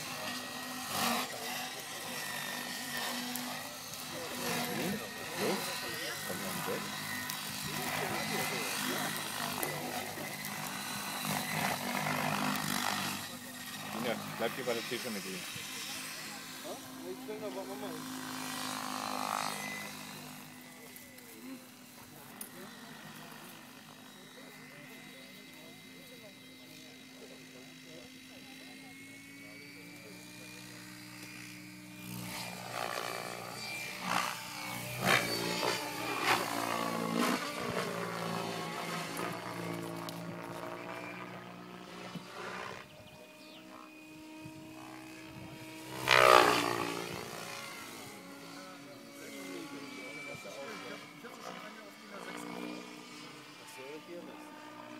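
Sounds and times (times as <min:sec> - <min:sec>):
rc helicopter rotor hum: 0:00.0 - 0:54.9.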